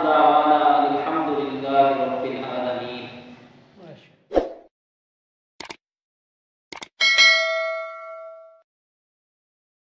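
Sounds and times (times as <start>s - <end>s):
bright bell chime: 7.0s - 8.7s.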